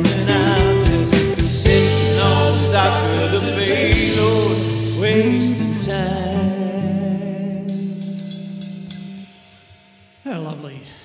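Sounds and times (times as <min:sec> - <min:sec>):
band final chord ringing: 0:00.0 - 0:07.0
cymbal and drum hits: 0:07.7 - 0:09.8.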